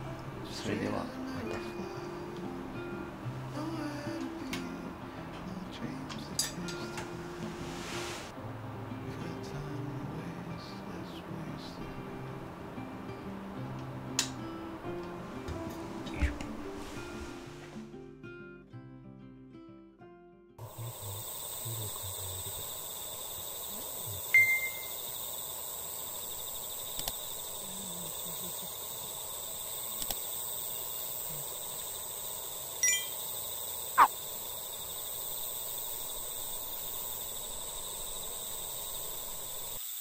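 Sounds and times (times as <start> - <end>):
crickets chirping: 1.0 - 8.4, 20.6 - 40.0.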